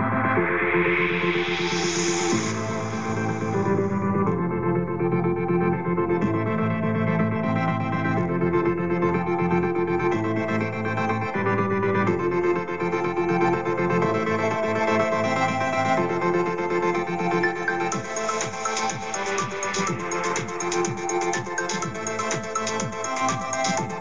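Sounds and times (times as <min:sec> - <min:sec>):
electronic music with held chords: 0:00.0 - 0:24.0.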